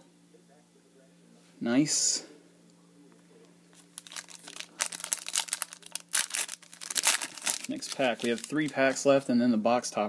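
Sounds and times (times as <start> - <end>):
foil pack crinkling and tearing: 3.8 - 9.1.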